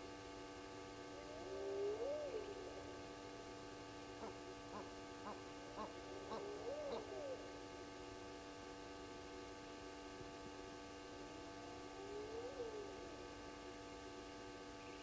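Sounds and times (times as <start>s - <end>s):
steady electrical hum: 0.0s - 15.0s.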